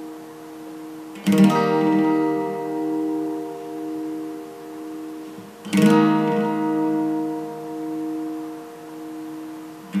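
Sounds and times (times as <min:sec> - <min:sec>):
acoustic guitar chord ringing: 0:00.0 - 0:10.0
acoustic guitar strum: 0:00.0 - 0:10.0.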